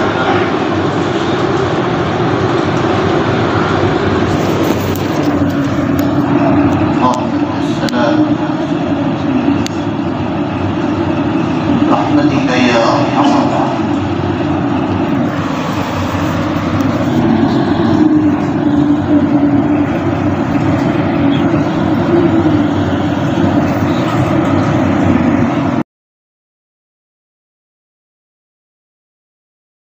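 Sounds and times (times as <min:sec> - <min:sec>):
loud steady background noise: 0:00.0 - 0:25.8
indistinct voice: 0:11.7 - 0:25.3.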